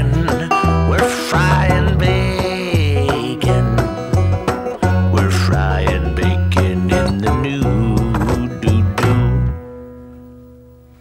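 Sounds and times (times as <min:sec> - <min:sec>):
banjo guitar and drum chord: 0:00.0 - 0:09.9.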